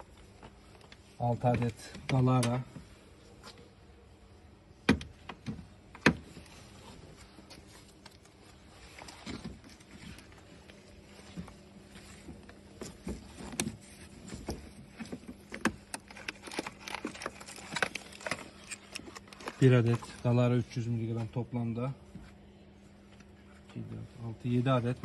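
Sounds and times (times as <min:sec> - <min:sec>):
gloved hands handling cardboard: 0:00.0 - 0:21.4
faint steady hum: 0:00.0 - 0:25.0.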